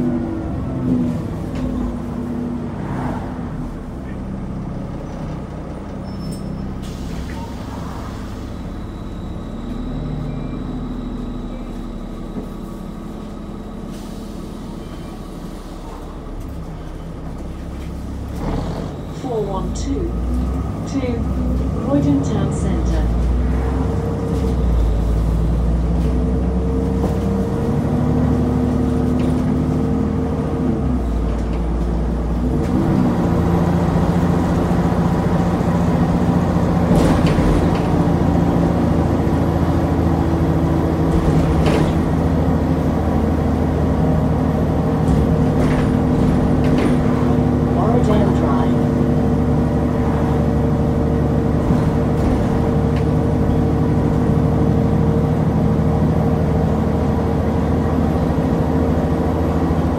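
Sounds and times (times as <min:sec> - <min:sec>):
bus diesel engine: 0:00.0 - 0:59.9
interior rattles and knocks: 0:44.9 - 0:47.6.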